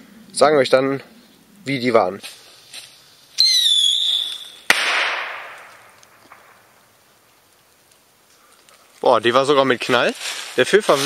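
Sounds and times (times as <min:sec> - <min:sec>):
firework rocket whistle: 0:03.4 - 0:05.6
firework bang: 0:03.5 - 0:06.6.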